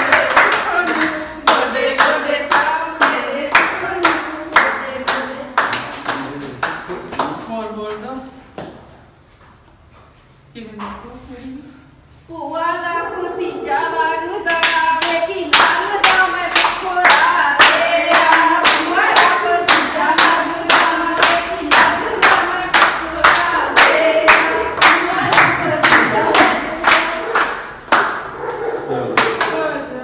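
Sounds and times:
group singing folk song: 0.0 - 6.0, 13.0 - 27.9
steady hand clapping: 0.0 - 8.0, 14.5 - 29.8.

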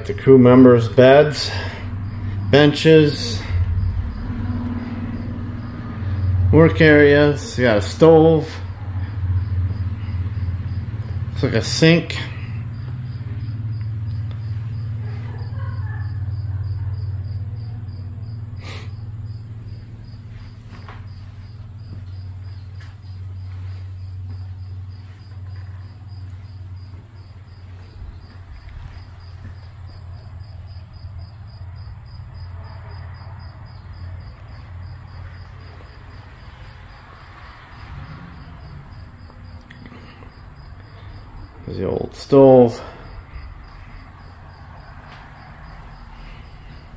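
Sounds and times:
cricket chirping: 0.0 - 46.9
steady low hum: 0.0 - 46.9.

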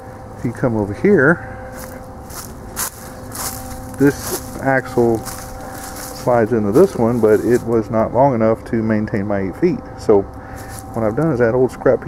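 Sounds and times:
low hum: 0.0 - 12.0
footsteps on dry leaves: 0.2 - 7.8, 10.5 - 11.2.

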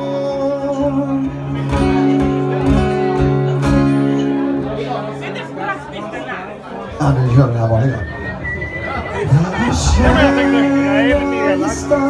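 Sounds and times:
acoustic guitars strumming: 0.0 - 5.8, 9.0 - 12.0
people talking and chattering: 0.0 - 12.0.

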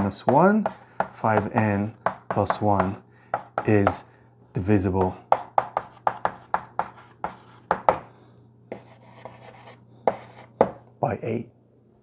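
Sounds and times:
chalk tapping and scratching on blackboard: 0.0 - 4.0, 5.0 - 8.1, 8.7 - 10.8.

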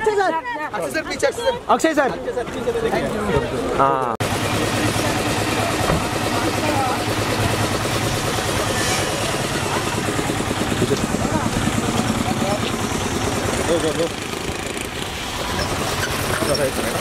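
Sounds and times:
chatter of voices: 0.0 - 14.2
vehicle engine running: 4.2 - 17.0.

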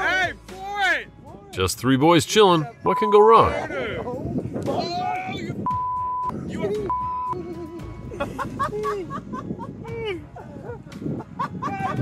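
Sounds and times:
censor bleep: 2.9 - 3.5, 5.7 - 7.4.

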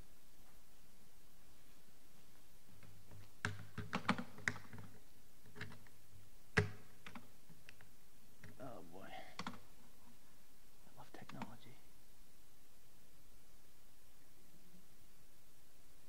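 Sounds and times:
low steady hum: 0.0 - 16.0
clicks and taps on a device: 6.6 - 7.2.

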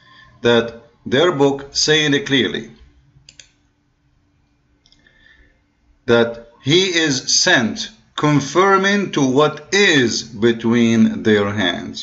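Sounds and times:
faint steady hum: 0.0 - 12.0
computer mouse clicks: 3.2 - 3.6.

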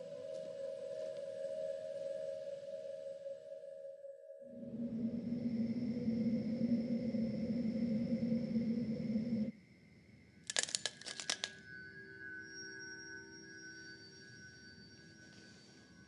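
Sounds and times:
thin sustained eerie tones: 0.0 - 16.0
low dark drone: 4.4 - 15.3
sharp clicks or rattles: 10.5 - 11.6.

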